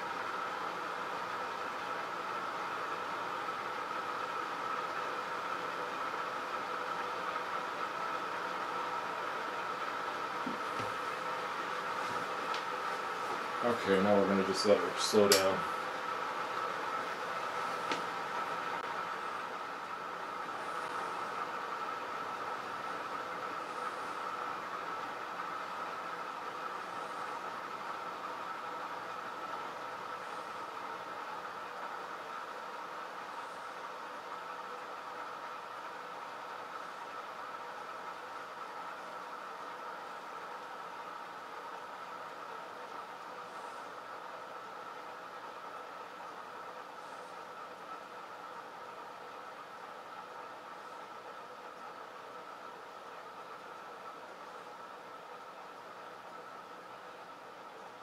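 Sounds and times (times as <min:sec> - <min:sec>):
click: 0:15.3 - 0:15.5.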